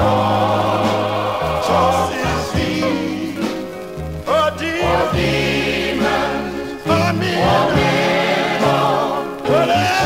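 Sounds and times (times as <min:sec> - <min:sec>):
male quartet singing in harmony: 0:00.0 - 0:10.0.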